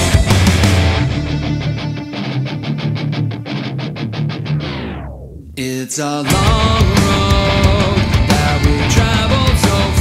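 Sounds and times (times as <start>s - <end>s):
hard rock electric guitar: 0.0s - 5.6s, 6.2s - 10.0s.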